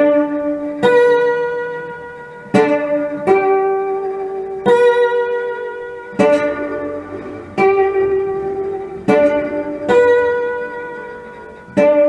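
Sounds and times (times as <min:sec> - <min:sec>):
blues guitar notes: 0:00.0 - 0:12.0.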